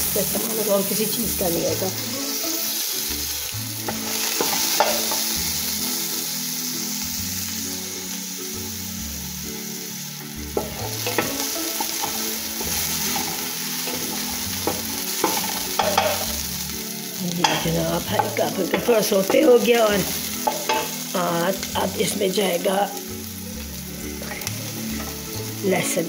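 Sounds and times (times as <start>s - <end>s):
onions sizzling in hot oil: 0.0s - 26.0s
utensil knocking against pot: 3.9s - 5.2s, 10.6s - 12.3s, 13.1s - 16.3s, 20.4s - 21.0s.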